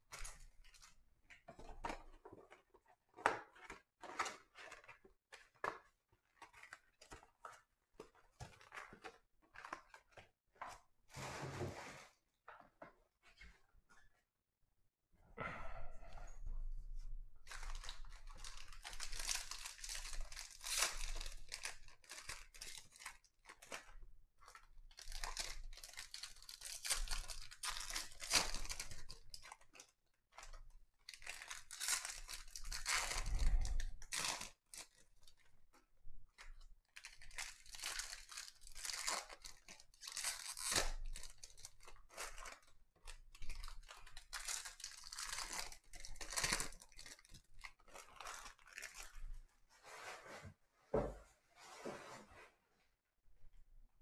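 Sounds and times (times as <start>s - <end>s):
foil wrappers tearing and crinkling: 17.5s - 23.1s, 24.9s - 29.5s, 37.0s - 42.7s, 43.3s - 49.2s.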